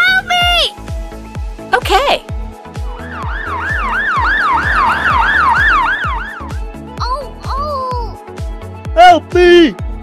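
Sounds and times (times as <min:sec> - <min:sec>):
background music with steady beat: 0:00.0 - 0:10.0
yelping emergency siren: 0:03.0 - 0:06.8.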